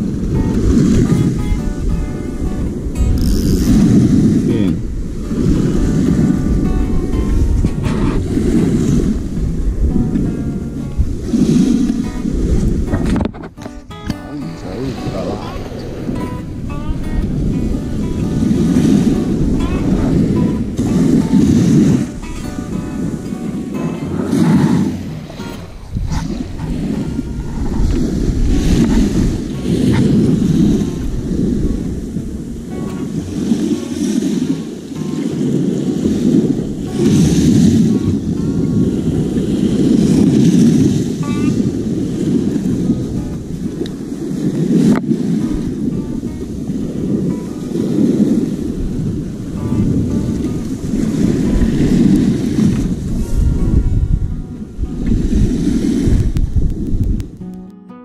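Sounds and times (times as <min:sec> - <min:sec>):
wind buffeting microphone: 0:00.0 - 0:57.9
sea surf breaking on shore: 0:00.0 - 0:58.0.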